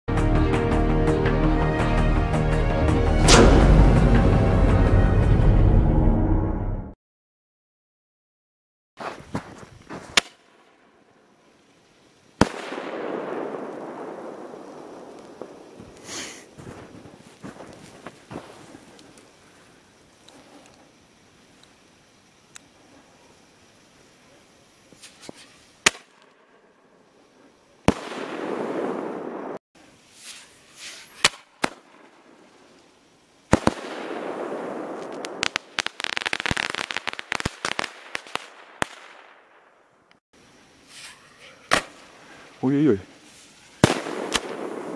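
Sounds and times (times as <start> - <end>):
firework shell bursting bang: 3.2 - 4.1
shell burst bang with rolling echo: 3.2 - 4.1, 43.8 - 44.9
firework launch report: 3.2 - 4.6, 12.2 - 21.0, 27.2 - 40.1, 40.9 - 44.9
lift-charge bang: 3.2 - 6.8.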